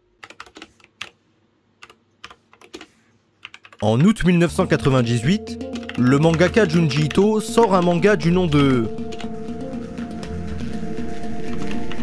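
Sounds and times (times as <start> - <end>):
typing on computer keyboard: 0.1 - 1.2, 1.8 - 4.2, 5.6 - 9.3.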